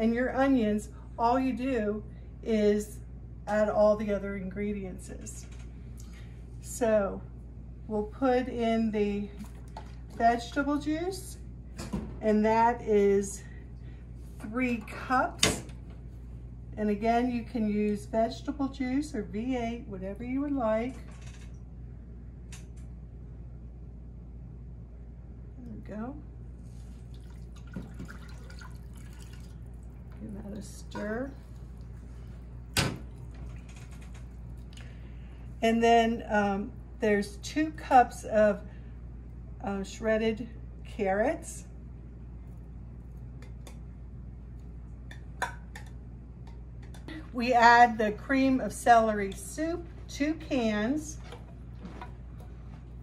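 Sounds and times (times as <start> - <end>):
steady low hum: 0.0 - 53.0
juice pouring into a glass cup: 26.9 - 30.0.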